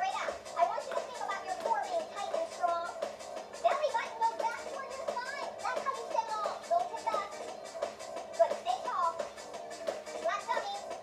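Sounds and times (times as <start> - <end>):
young children talking: 3.6 - 7.6, 8.3 - 9.3, 10.1 - 11.0.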